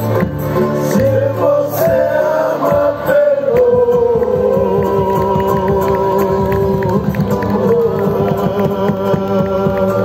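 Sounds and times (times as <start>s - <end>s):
percussion strikes: 0.0s - 10.0s
strummed guitars: 0.0s - 10.0s.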